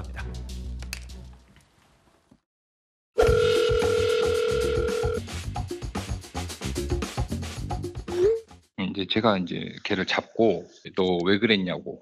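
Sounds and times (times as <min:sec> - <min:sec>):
telephone dial tone: 0:03.2 - 0:05.2
music with drum beat: 0:03.2 - 0:08.6.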